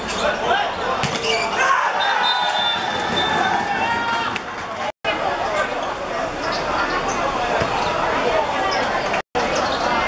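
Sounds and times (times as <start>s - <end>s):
players calling out: 0.1s - 9.9s.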